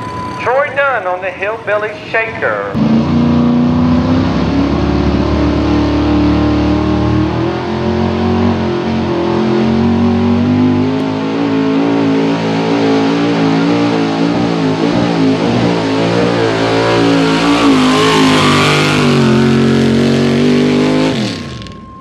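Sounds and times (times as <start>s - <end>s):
truck engine at high revs: 2.5s - 22.0s.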